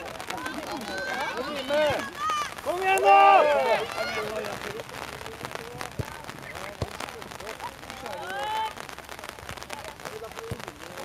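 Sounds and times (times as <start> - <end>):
young players shouting: 0.0 - 4.7, 8.0 - 8.8.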